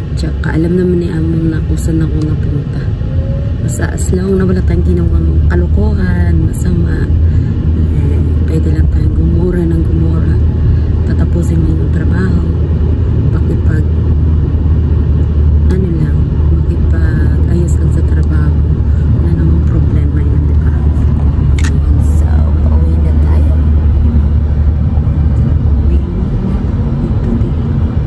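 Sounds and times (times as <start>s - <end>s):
woman talking: 0.0s - 2.9s, 3.6s - 12.7s, 13.3s - 14.0s, 15.6s - 24.4s, 25.4s - 27.8s
car interior rumble: 0.0s - 28.0s.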